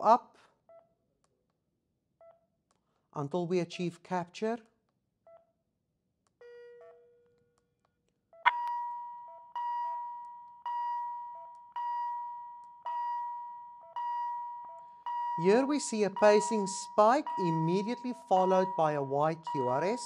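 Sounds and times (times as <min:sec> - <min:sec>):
low monitor beeps: 0:09.6 - 0:20.0.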